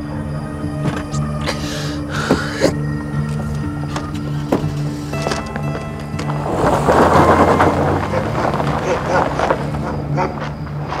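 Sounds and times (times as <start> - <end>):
sustained music score: 0.0 - 11.0
man sobbing and gasping: 0.9 - 2.8.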